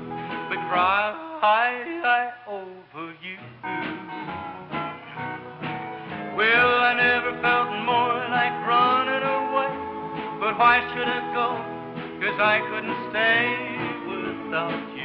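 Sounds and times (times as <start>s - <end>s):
sliding lead melody: 0.0s - 1.1s, 3.5s - 15.0s
plucked guitar accompaniment: 0.0s - 2.2s, 3.0s - 15.0s.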